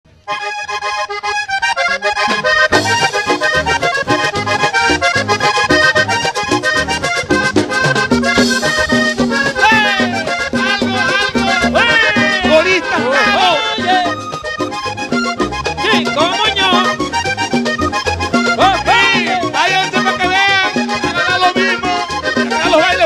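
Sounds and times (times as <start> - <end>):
bass: 0.1 - 23.0
button accordion: 0.1 - 23.0
percussion beat: 1.8 - 23.0.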